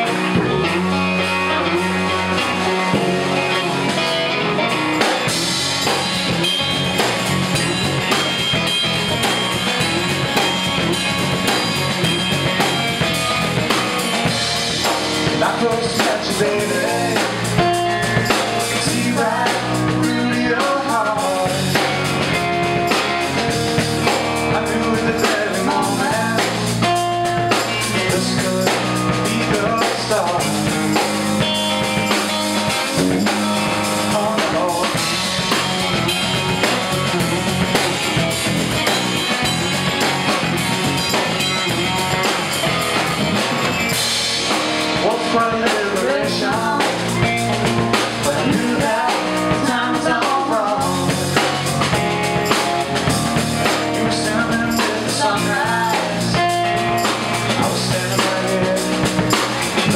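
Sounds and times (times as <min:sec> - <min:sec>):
drum kit steady beat: 0:00.0 - 0:59.9
electric bass: 0:00.0 - 0:59.9
electric guitar: 0:00.0 - 0:59.9.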